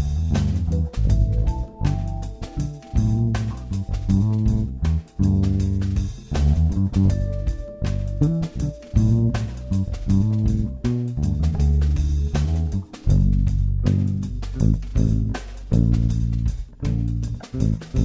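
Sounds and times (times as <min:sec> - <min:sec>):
drum beat: 0:00.0 - 0:18.0
electric bass guitar: 0:00.0 - 0:18.0.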